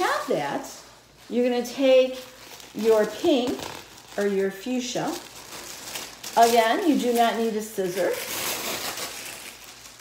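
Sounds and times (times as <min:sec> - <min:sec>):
tissue paper rustling: 0:00.0 - 0:10.0.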